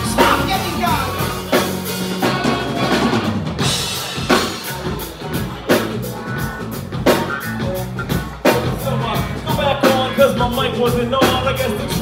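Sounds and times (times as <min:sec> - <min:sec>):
bass guitar: 0:00.0 - 0:12.0
drum kit hits: 0:00.0 - 0:12.0
live band playing: 0:00.0 - 0:12.0.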